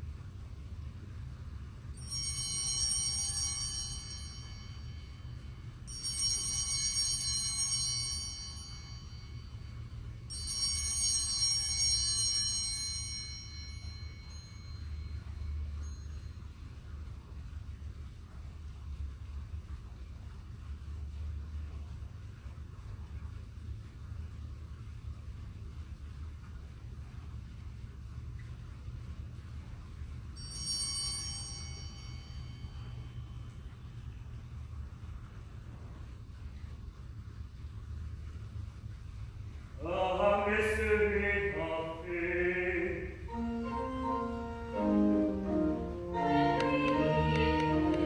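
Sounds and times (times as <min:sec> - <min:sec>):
altar bell ringing: 0:01.9 - 0:16.9, 0:30.3 - 0:33.7.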